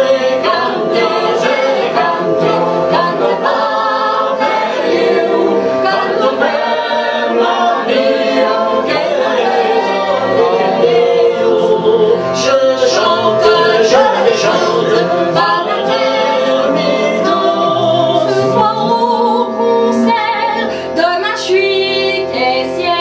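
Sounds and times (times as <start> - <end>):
string instrument drone: 0.0 - 23.0
woman and man singing: 11.6 - 19.3.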